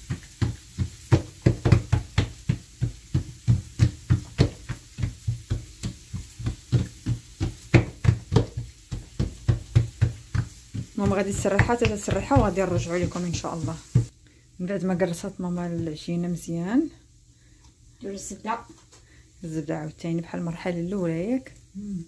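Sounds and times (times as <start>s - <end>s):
hands patting dough on stone: 0.0s - 14.1s, 15.0s - 16.2s.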